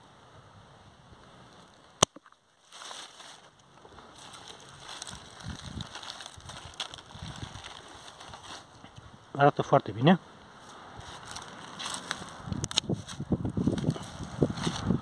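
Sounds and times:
rustling of vines and leaves: 0:01.0 - 0:15.0
handling noise: 0:02.0 - 0:09.0.

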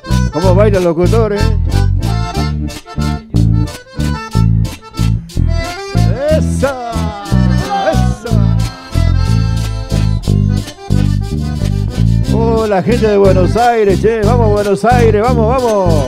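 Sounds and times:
accordion dance-band music: 0:00.0 - 0:16.0
steady bass beat: 0:00.0 - 0:16.0.

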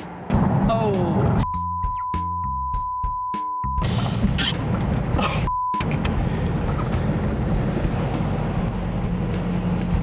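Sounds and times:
car engine and road noise drone: 0:00.0 - 0:01.6, 0:03.8 - 0:10.0.

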